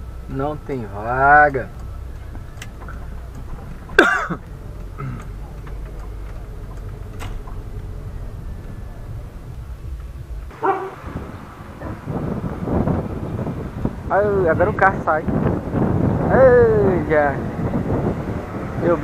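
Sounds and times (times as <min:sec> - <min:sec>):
car engine and road rumble: 0:00.0 - 0:19.0
outdoor street noise: 0:00.0 - 0:19.0.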